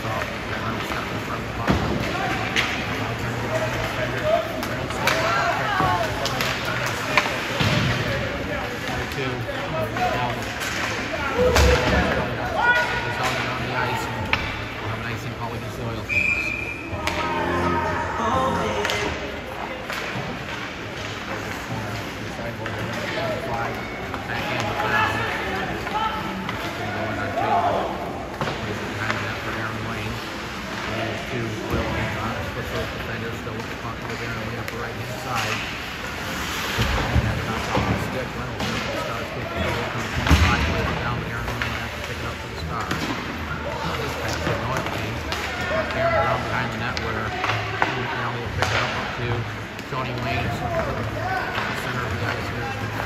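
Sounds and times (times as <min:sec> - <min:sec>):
hockey sticks and puck clacking: 0:00.0 - 0:53.0
whistle blast: 0:16.1 - 0:16.9.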